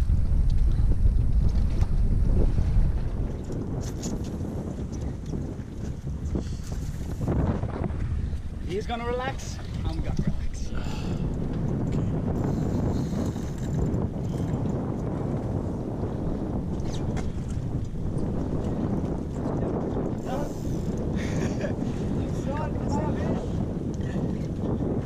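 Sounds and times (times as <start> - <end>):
boat: 0.0 - 25.0
sea: 0.0 - 25.0
wind buffeting microphone: 0.0 - 25.0.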